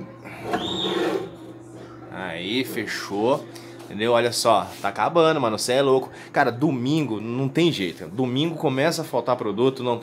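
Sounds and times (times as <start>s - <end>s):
glass bottle scraping on shelf: 0.4s - 1.5s.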